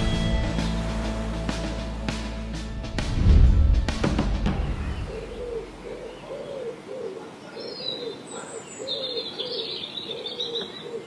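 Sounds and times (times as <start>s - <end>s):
bird low call: 4.4s - 11.0s
bird chirps and trill: 4.5s - 11.0s.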